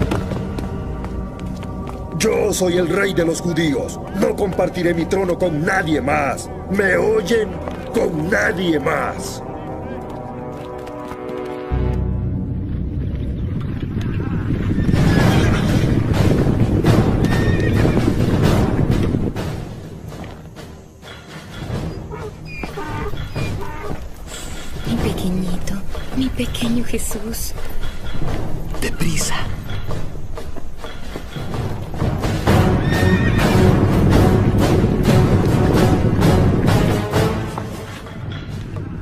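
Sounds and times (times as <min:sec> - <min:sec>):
dramatic music score: 0:00.0 - 0:39.0
horses galloping: 0:12.8 - 0:39.0
horse neighing: 0:21.6 - 0:24.1, 0:32.7 - 0:33.7.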